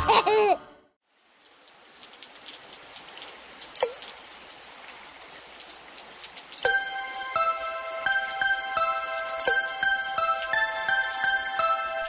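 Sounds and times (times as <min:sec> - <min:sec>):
steady rain falling: 0:01.0 - 0:12.0
water drips: 0:01.1 - 0:12.0.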